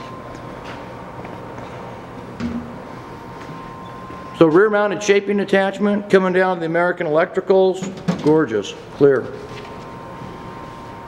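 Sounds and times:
high steady whine: 0.0s - 11.0s
steady hum: 0.0s - 11.0s.

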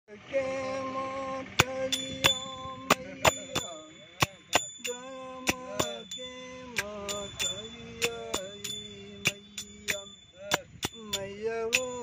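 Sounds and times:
man singing devotional song: 0.1s - 12.0s
small metal bell strikes: 1.6s - 12.0s.

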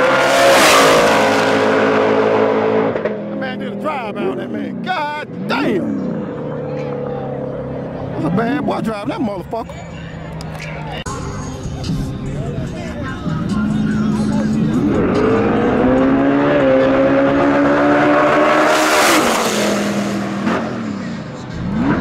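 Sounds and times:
drag racing cars accelerating: 0.0s - 10.9s, 13.2s - 22.0s.

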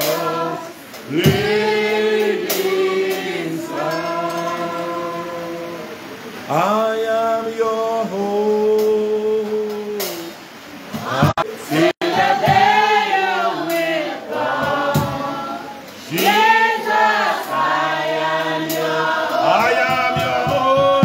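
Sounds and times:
man singing worship song: 0.0s - 10.4s, 11.3s - 21.0s.

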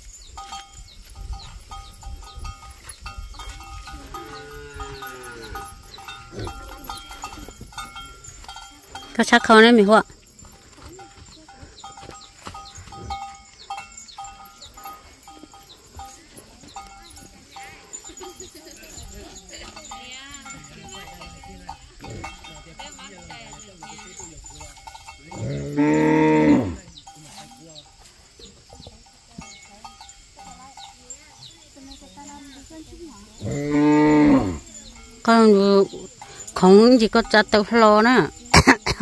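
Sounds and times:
faint bell-like rings: 0.0s - 39.0s
cow mooing: 4.0s - 5.7s, 25.3s - 26.8s, 33.4s - 34.6s.

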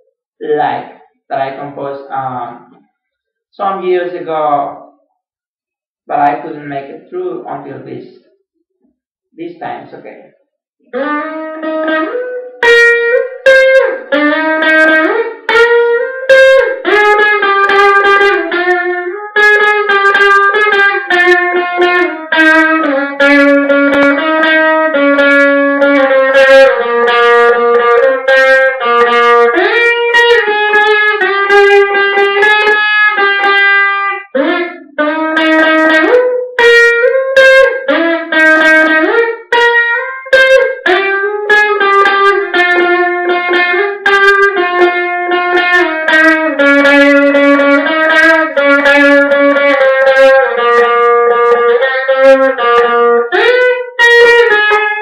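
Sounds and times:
electric guitar solo: 10.9s - 55.0s.

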